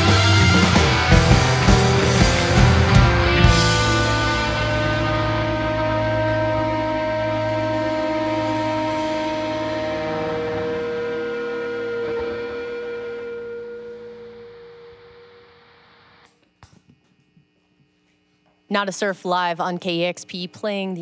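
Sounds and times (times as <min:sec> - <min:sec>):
cymbal wash: 0:00.0 - 0:16.2
rock band held chord: 0:00.0 - 0:16.2.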